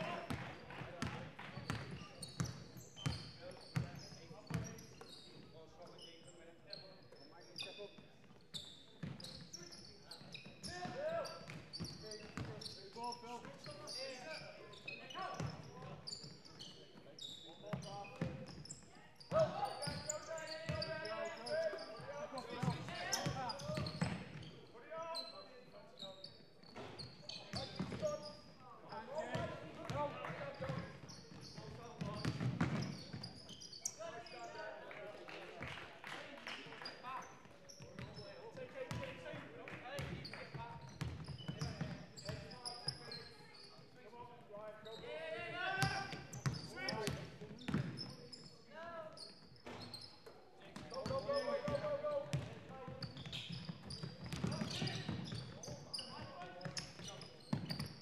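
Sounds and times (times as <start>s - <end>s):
basketball bouncing on wooden court: 0.3s - 3.9s, 11.5s - 12.6s, 27.6s - 28.1s, 30.7s - 33.3s, 41.0s - 42.5s, 45.8s - 48.1s, 50.8s - 55.6s, 56.6s - 57.9s.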